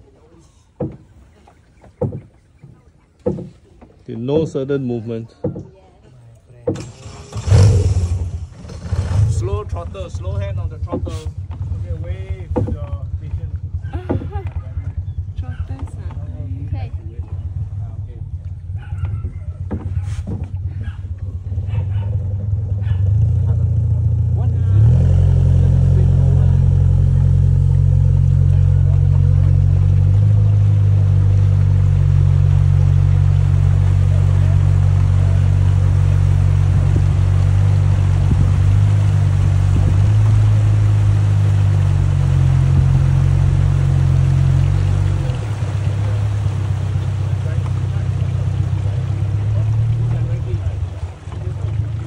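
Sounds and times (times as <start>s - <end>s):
boat motor droning: 0.0s - 52.0s.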